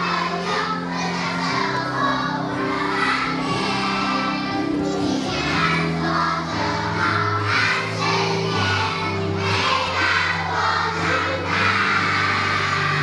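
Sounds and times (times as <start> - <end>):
audience noise: 0.0 - 13.0
children singing together: 0.0 - 13.0.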